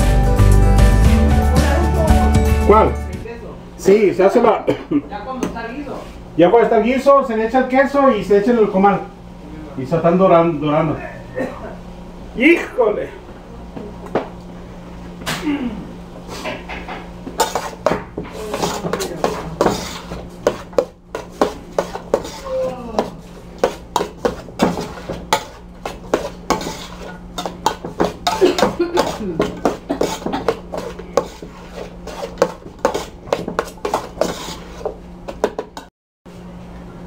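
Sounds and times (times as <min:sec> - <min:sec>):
metal spoon stirring in pot: 0:17.4 - 0:35.9.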